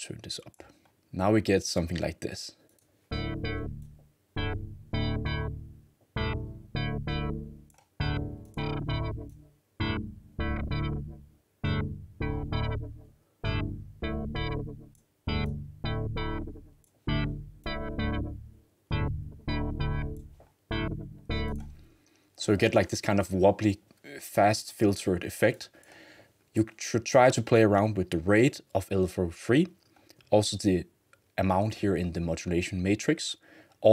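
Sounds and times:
synth chord stabs with wobbly filter: 3.1 - 21.8.

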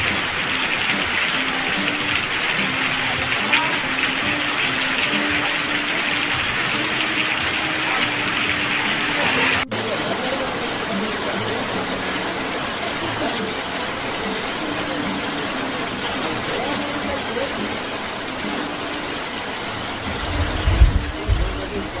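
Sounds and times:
heavy rain falling: 0.0 - 22.0
low rumbling: 19.9 - 22.0.

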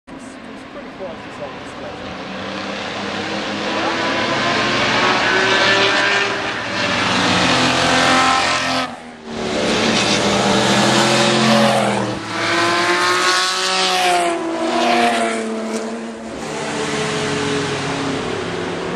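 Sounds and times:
racing car engines passing: 0.1 - 18.9.

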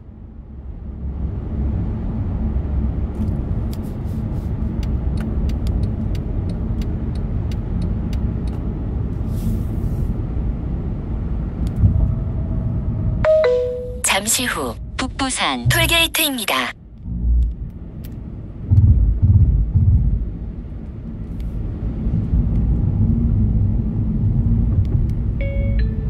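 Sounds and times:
car road and engine rumble: 0.0 - 26.0
two-note navigation chime: 13.2 - 14.0.

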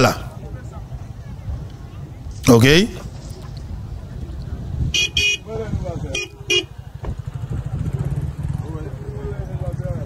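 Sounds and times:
faint crowd voices: 0.0 - 10.0
motorcycle engine running: 3.1 - 10.0.

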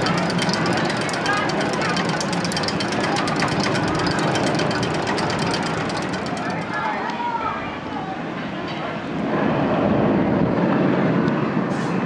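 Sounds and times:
ratchet clacking rapidly: 0.0 - 7.3
mechanical rumble: 0.0 - 8.0.

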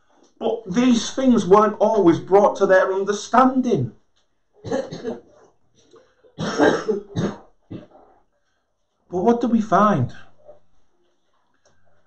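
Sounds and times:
man coughing: 4.6 - 5.3, 6.4 - 8.0.

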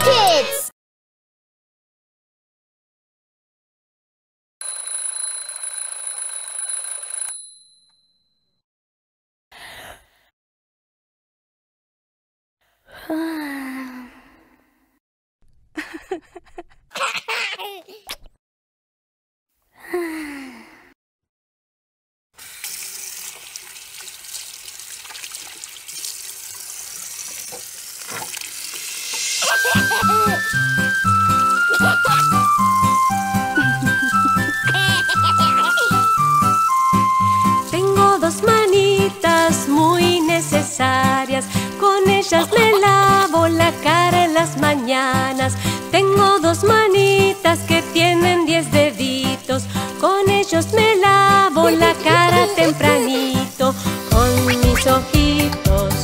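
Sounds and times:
mechanical alarm clock ringing: 4.6 - 8.2
tap water running into sink: 22.4 - 29.4
music: 29.4 - 56.0
cartoon baby yawning: 51.5 - 53.5.

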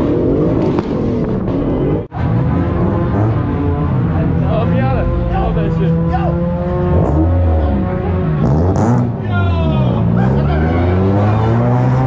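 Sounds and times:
car engines revving past: 0.0 - 12.0
steady engine drone: 0.0 - 12.0.

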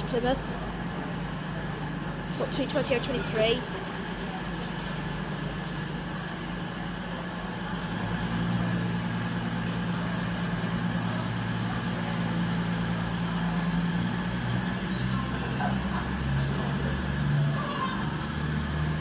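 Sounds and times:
diesel train engines humming: 0.0 - 19.0.

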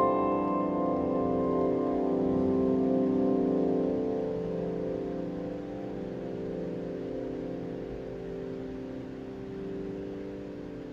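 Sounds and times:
piano chord ringing out: 0.0 - 10.9.

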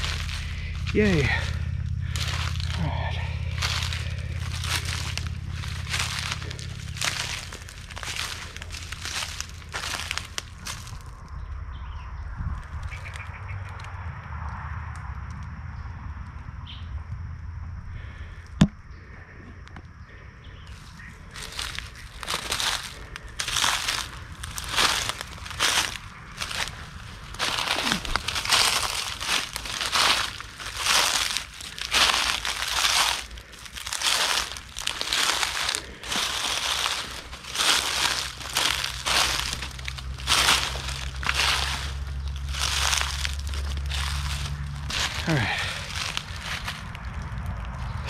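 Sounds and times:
footsteps crunching through dry leaves: 0.0 - 11.4, 12.6 - 13.5, 20.1 - 48.0.

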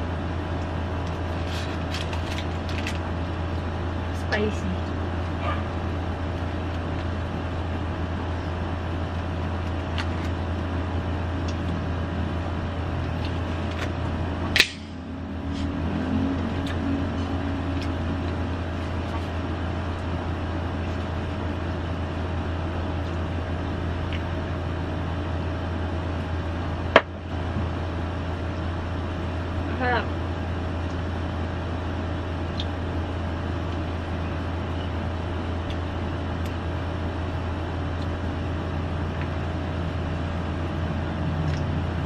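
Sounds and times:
low background hum: 0.0 - 42.0.

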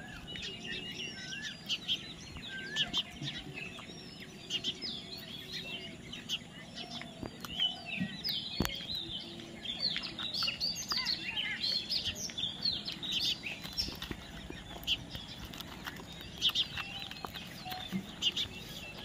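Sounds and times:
parakeets chirping: 0.0 - 19.0.

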